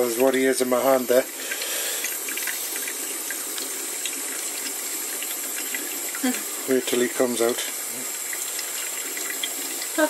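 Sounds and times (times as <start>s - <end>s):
tap water splashing in steel sink: 4.0s - 10.0s.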